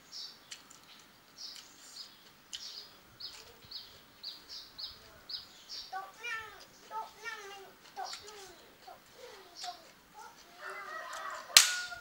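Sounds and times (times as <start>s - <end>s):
small bird chirping: 0.0s - 10.6s.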